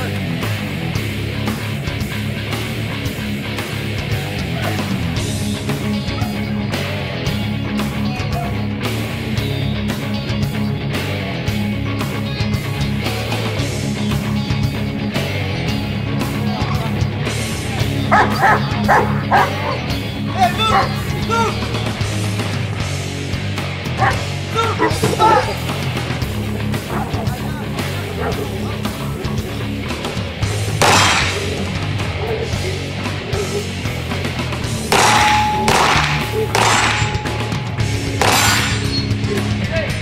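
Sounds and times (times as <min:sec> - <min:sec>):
loud rock music: 0:00.0 - 0:40.0
dog barking: 0:18.1 - 0:19.9, 0:20.6 - 0:21.0, 0:24.0 - 0:25.6, 0:26.8 - 0:28.6, 0:33.3 - 0:33.8
loud metallic crashes: 0:34.9 - 0:39.2
ringing tone: 0:35.0 - 0:39.1.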